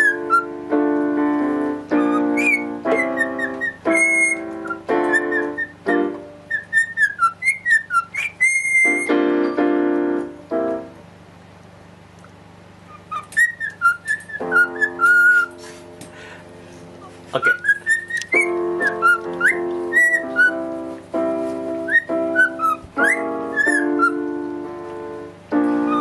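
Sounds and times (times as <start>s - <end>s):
cockatiel whistling a tune: 0.0s - 0.6s, 1.9s - 9.2s, 12.9s - 15.6s, 17.4s - 20.8s, 21.8s - 24.4s, 25.7s - 26.0s
electronic keyboard chords: 0.0s - 6.5s, 8.9s - 11.2s, 14.4s - 26.0s.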